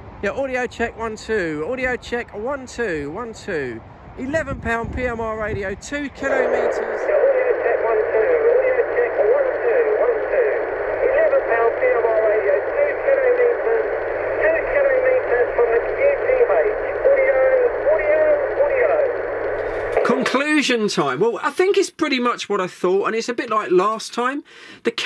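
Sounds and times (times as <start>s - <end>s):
steady radio hiss: 0.0s - 21.6s
man's voice over radio: 0.2s - 21.3s.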